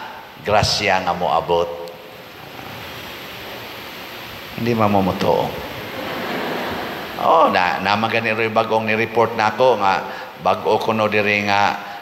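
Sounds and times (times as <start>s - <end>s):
microphone background hiss: 0.0s - 12.0s.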